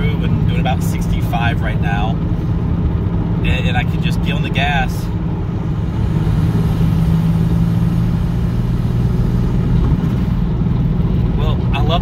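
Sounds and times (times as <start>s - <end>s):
car engine drone: 0.0s - 12.0s
road noise: 0.0s - 12.0s.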